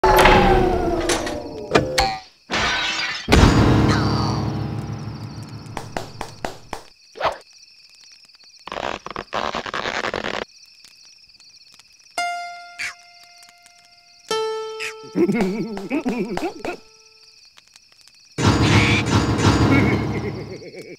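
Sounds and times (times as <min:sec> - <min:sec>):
cartoon crashes and thuds: 0:00.0 - 0:05.1, 0:18.4 - 0:20.6
sharp knocks: 0:05.7 - 0:06.9.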